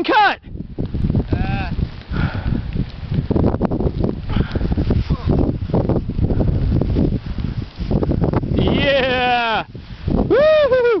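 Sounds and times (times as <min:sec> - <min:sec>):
wind buffeting microphone: 0:00.3 - 0:11.0
person cheering with high whoops: 0:10.2 - 0:11.0.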